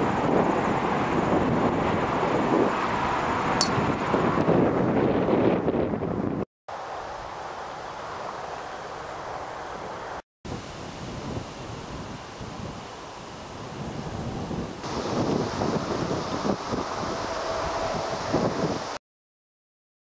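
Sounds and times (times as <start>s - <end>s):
wind noise on microphone: 0.0s - 6.5s, 9.2s - 19.0s.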